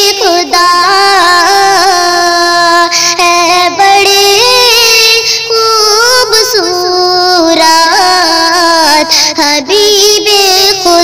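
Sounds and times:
high voice singing: 0.0s - 11.0s.

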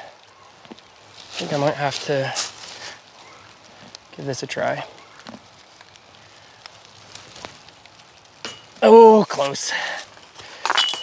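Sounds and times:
man exclaiming: 8.8s - 9.7s.

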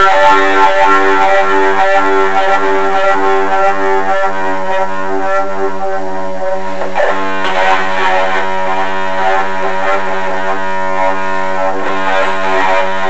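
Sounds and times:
distorted guitar droning note: 0.0s - 13.0s
guitar chords struck: 0.0s - 13.0s.

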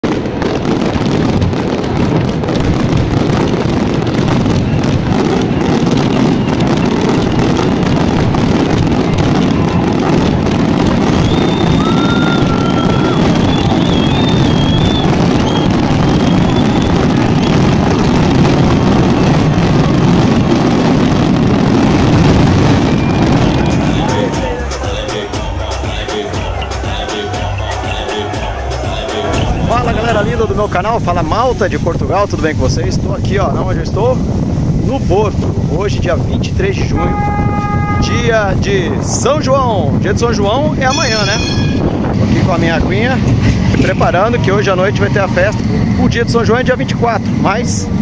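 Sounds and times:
fireworks whistles: 0.0s - 32.6s, 36.8s - 38.3s, 40.8s - 42.8s
fireworks bangs and crackles: 0.0s - 48.0s.

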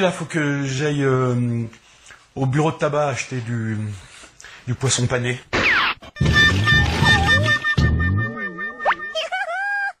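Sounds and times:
wobbling cartoon sound: 5.6s - 9.8s
rising boing glide: 6.2s - 9.2s
wavering held tone: 6.6s - 9.3s.

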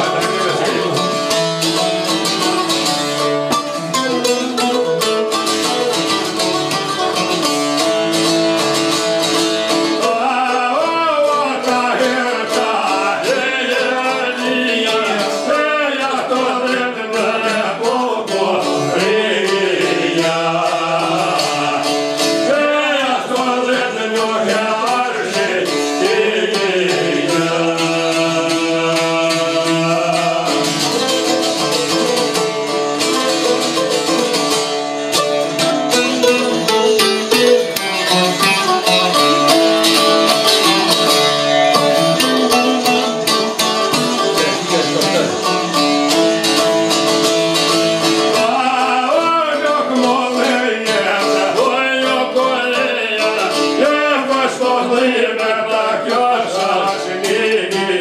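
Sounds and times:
men singing: 0.0s - 2.5s, 8.8s - 34.3s, 38.3s - 58.0s
tremolo-picked lute music: 0.0s - 58.0s.

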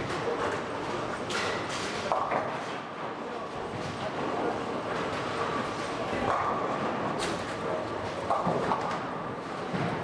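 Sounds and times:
bowling hall clatter: 3.6s - 10.0s.

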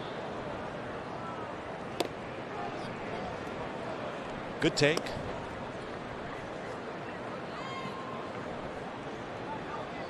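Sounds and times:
crowd murmur: 0.0s - 10.0s
baseball smacking into mitt: 1.9s - 2.2s, 4.9s - 5.2s.

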